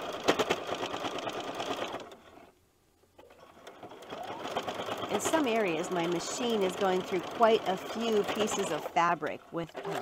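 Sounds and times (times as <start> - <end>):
sewing machine stitching: 0.0 - 2.4, 3.2 - 10.0.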